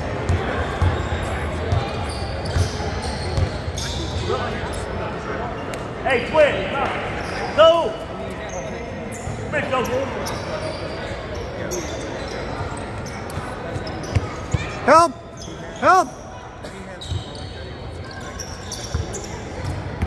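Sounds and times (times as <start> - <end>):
sneaker squeaks: 0.6 - 5.9, 7.0 - 20.0
echoing voices: 14.6 - 16.9.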